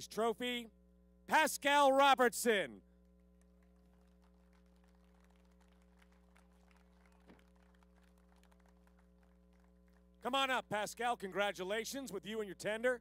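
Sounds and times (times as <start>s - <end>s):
scattered hand claps: 3.1s - 10.3s.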